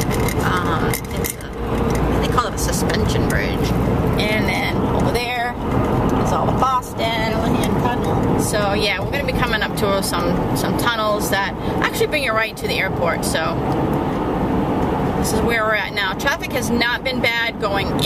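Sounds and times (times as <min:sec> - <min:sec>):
voices: 0:00.0 - 0:13.6, 0:15.2 - 0:18.0
car road and engine noise: 0:00.0 - 0:18.0.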